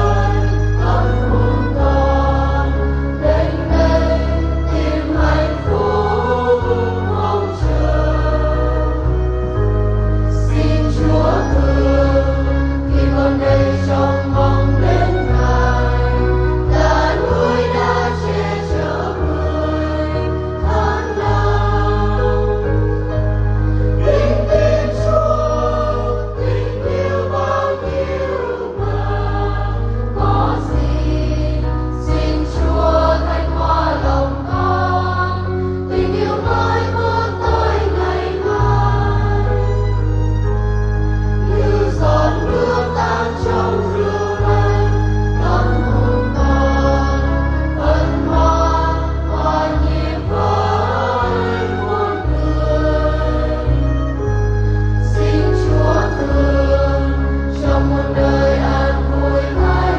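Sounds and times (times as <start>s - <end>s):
choir singing a hymn: 0.0s - 59.9s
sustained low instrumental chords: 0.0s - 59.9s.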